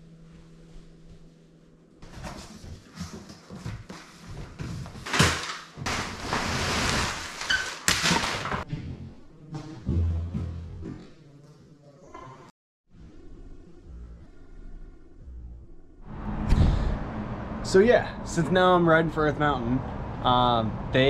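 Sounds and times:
cardboard box rustling and scraping: 0:05.9 - 0:07.6.

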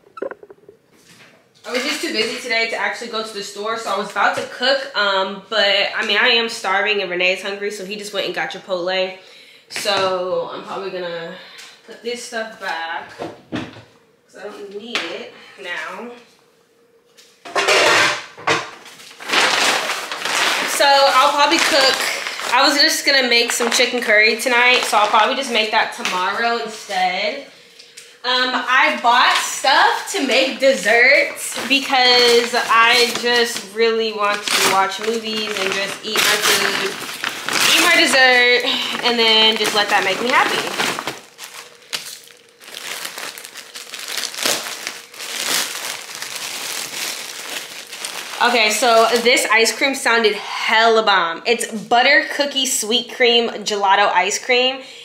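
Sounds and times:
paper bag rustling: 0:18.8 - 0:25.6, 0:30.7 - 0:49.7.

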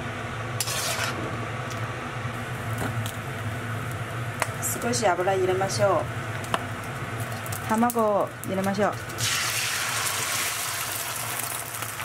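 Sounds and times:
steady low hum: 0:00.0 - 0:09.9
metal spatula scraping a wok: 0:00.6 - 0:01.2.

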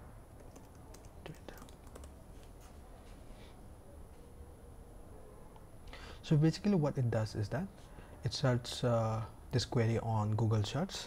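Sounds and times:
faint keyboard keystrokes: 0:00.4 - 0:02.6.

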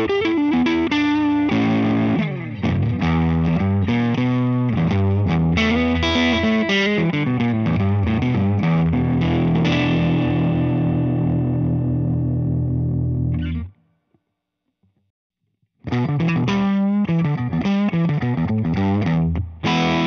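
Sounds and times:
electric guitar notes and chords: 0:00.0 - 0:13.7, 0:15.8 - 0:20.0.

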